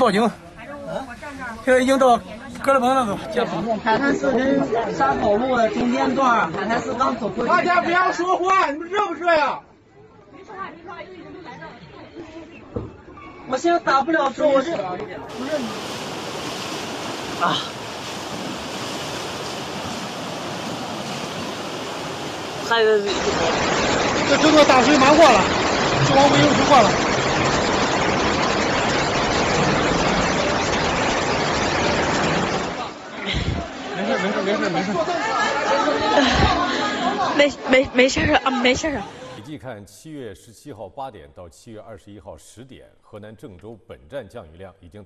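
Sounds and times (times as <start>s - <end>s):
floodwater rushing: 15.2s - 39.4s.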